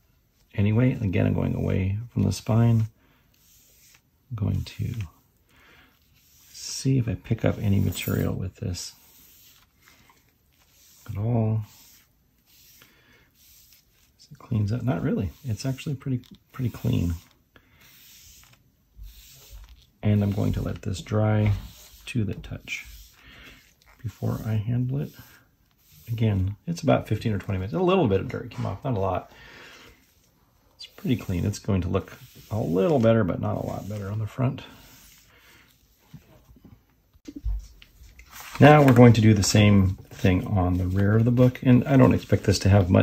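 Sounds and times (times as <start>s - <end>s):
cleaning pad rubbing on paper: 0.6s - 5.1s, 6.0s - 29.2s, 30.0s - 36.0s, 38.3s - 43.0s.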